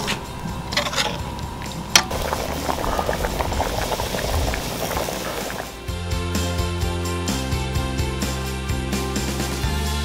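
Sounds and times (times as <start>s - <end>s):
gravy boiling with bubbles popping: 0.1s - 5.8s.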